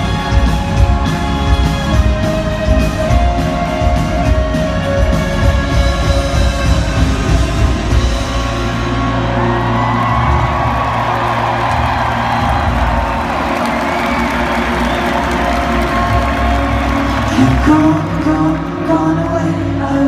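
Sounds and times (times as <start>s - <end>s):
live rock band through pa: 0.0s - 20.0s
crowd cheering and whooping: 8.8s - 18.0s.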